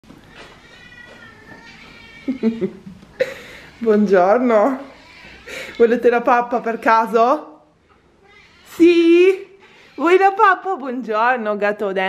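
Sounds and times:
cat meowing: 0:00.3 - 0:02.6, 0:04.8 - 0:06.0, 0:08.2 - 0:10.3.

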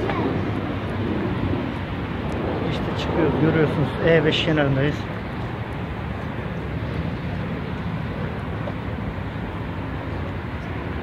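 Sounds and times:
highway traffic noise: 0:00.0 - 0:11.0.

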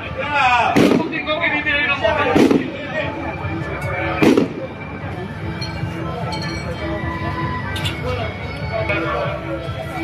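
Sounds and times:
chatter of many voices: 0:00.0 - 0:10.0
firecracker bang: 0:00.7 - 0:01.3, 0:02.3 - 0:02.8, 0:04.2 - 0:04.7.

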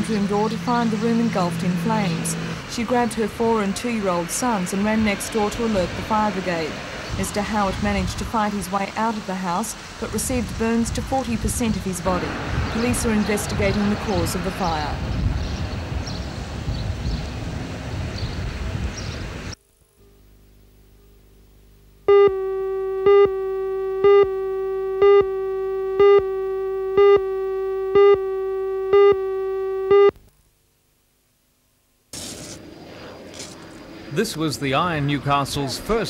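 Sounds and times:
electronic line-up tone: 0:00.0 - 0:03.1, 0:22.1 - 0:30.2
steady background noise: 0:00.0 - 0:16.7
countdown beeps: 0:22.1 - 0:30.1.

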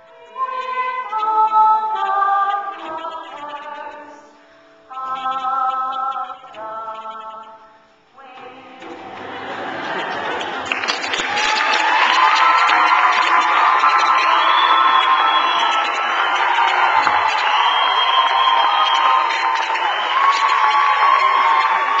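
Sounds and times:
audience applauding: 0:08.8 - 0:22.0
high-pitched whoops: 0:09.8 - 0:22.0.

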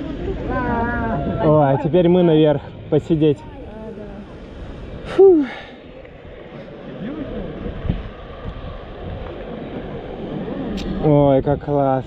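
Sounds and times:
wind and ride machinery rushing: 0:00.0 - 0:12.0.

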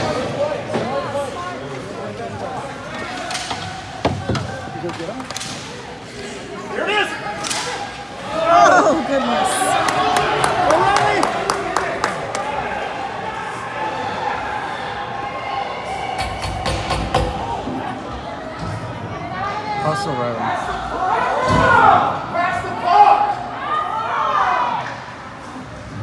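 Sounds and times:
hockey sticks clacking on ice: 0:02.9 - 0:05.8
people shouting: 0:07.6 - 0:11.3.

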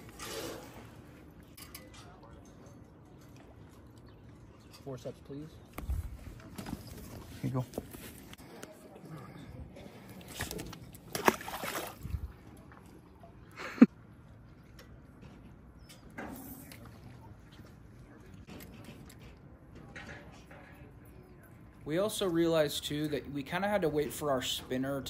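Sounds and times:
fish splashing: 0:10.2 - 0:12.4.

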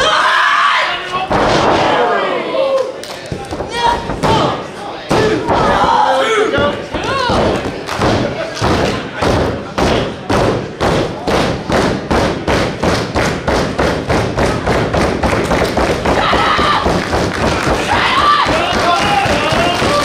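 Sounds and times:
people shouting: 0:00.0 - 0:03.0, 0:03.7 - 0:07.6, 0:16.0 - 0:20.0
crowd stomping in unison: 0:06.6 - 0:20.0.

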